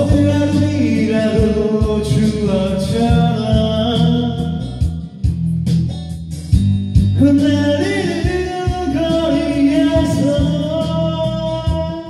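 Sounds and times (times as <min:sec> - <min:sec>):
man singing a ballad: 0:00.0 - 0:05.3, 0:07.1 - 0:12.0
karaoke backing track: 0:00.0 - 0:12.0.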